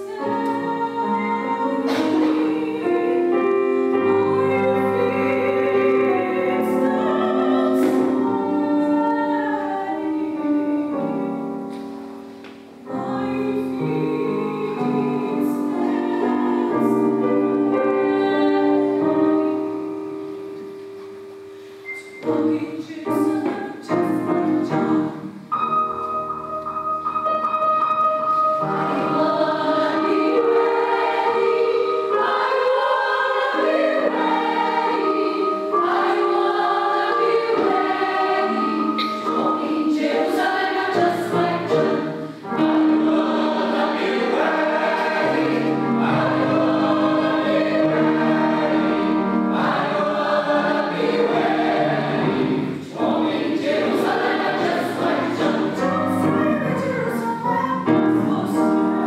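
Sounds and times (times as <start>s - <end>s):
mixed choir singing: 0.0s - 11.3s, 12.9s - 20.0s, 28.6s - 57.2s, 57.8s - 59.0s.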